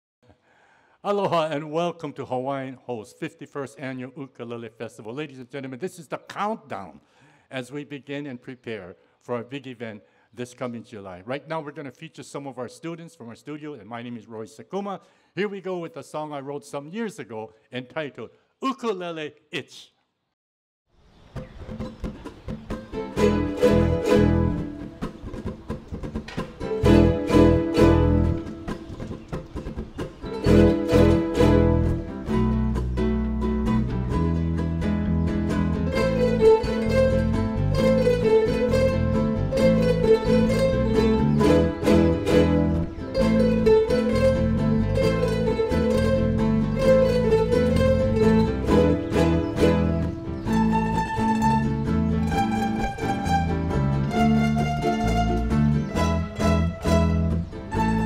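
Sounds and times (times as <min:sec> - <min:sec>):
ukulele melody line: 0:21.4 - 0:58.0
ukulele ensemble strumming: 0:21.8 - 0:58.0.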